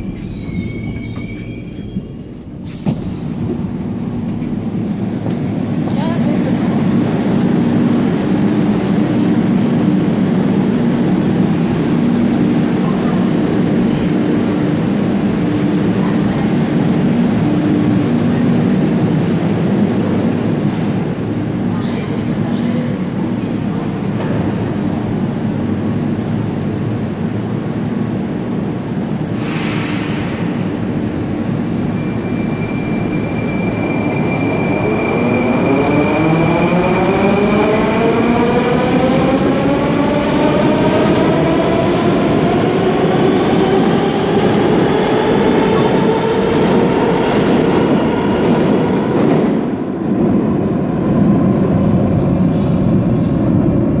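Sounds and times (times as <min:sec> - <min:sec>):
train rumble: 0:00.0 - 0:54.0.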